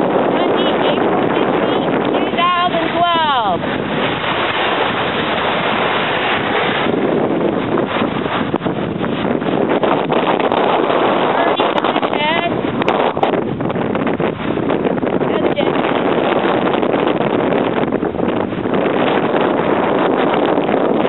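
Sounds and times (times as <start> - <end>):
small waves washing on sand: 0.0 - 21.0
wind buffeting microphone: 0.0 - 21.0.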